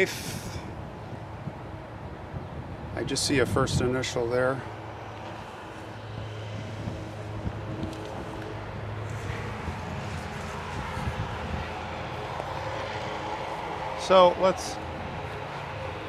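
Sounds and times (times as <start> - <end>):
distant engine drone: 0.0 - 16.0.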